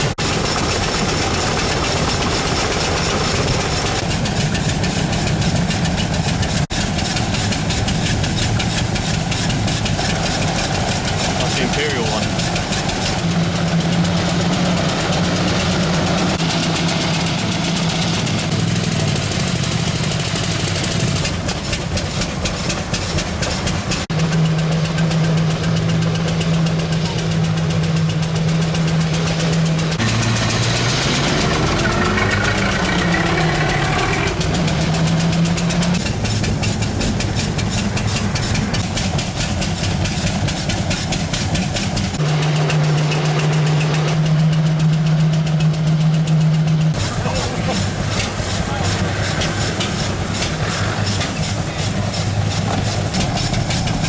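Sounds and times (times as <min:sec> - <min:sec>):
car engine running: 0:00.0 - 0:54.0.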